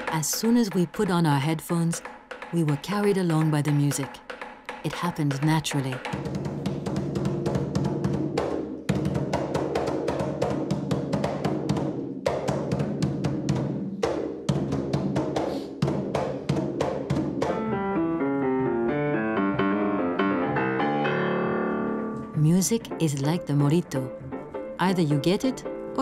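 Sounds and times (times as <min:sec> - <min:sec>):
hand drums fast rhythm: 0:00.0 - 0:17.6
piano notes: 0:17.4 - 0:26.0.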